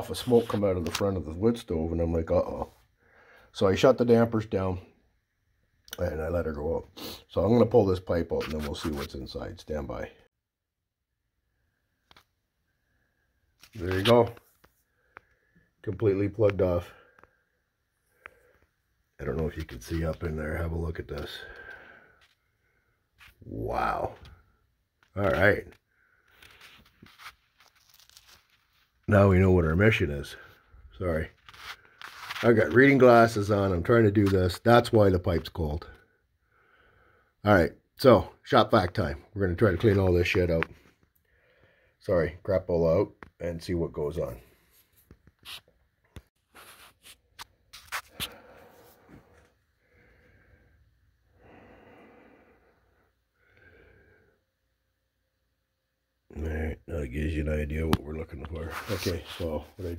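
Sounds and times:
faint rustling handling noises: 0.0 - 3.7, 13.4 - 34.9, 43.2 - 50.2, 57.7 - 59.9.

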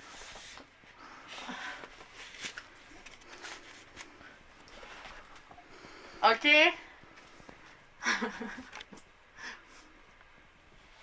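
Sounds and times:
books rustling: 0.0 - 6.0.

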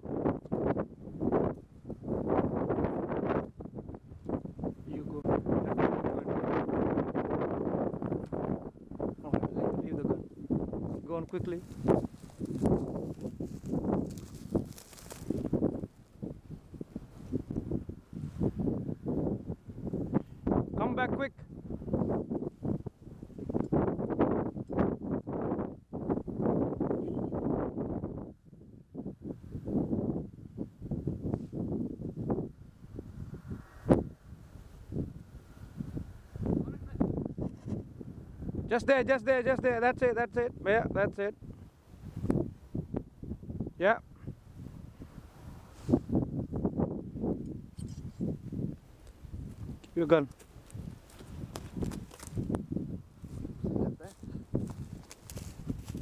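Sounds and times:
gusty wind buffeting microphone: 0.0 - 56.0.

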